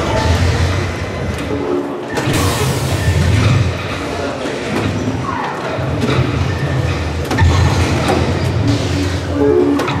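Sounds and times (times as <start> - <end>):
busy hall background rumble: 0.0 - 10.0.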